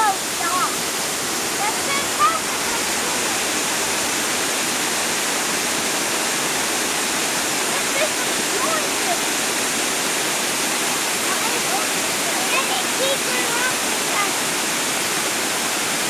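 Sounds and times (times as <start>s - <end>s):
water rushing over dam: 0.0s - 16.0s.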